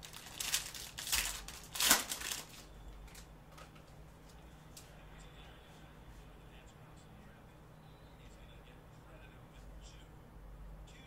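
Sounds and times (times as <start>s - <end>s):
foil wrapper tearing and crinkling: 0.0s - 3.2s.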